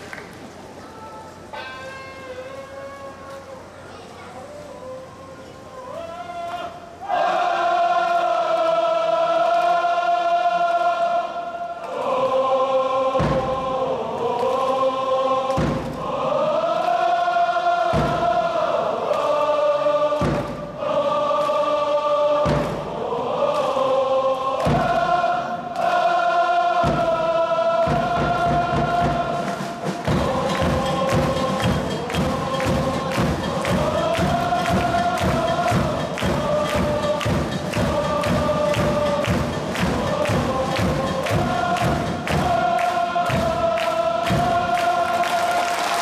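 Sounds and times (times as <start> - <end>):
supporters singing a chant: 4.7 - 46.0
drum thumping: 13.1 - 13.8, 15.5 - 16.2, 17.9 - 18.5, 20.2 - 20.8, 22.4 - 23.0, 24.6 - 25.2, 26.8 - 45.0.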